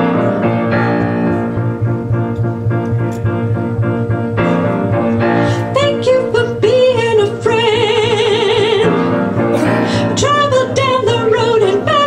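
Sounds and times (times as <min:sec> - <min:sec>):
woman singing with vibrato: 0:05.6 - 0:12.0.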